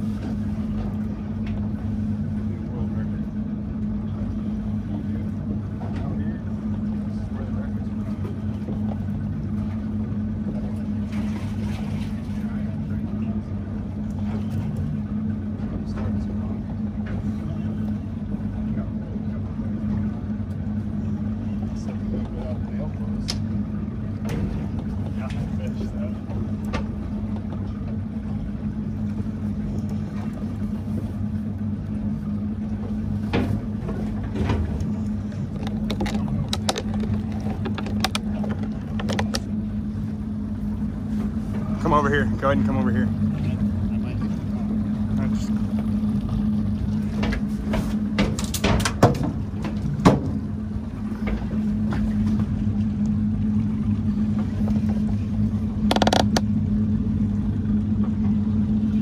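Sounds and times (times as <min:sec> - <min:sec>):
boat engine idling: 0:00.0 - 0:59.0.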